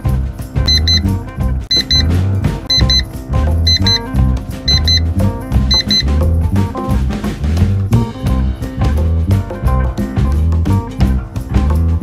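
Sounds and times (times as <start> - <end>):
upbeat jazzy music: 0.0 - 12.0
short high beeps: 0.7 - 1.1, 1.7 - 2.1, 2.7 - 3.1, 3.7 - 4.1, 4.7 - 5.1, 5.7 - 6.1.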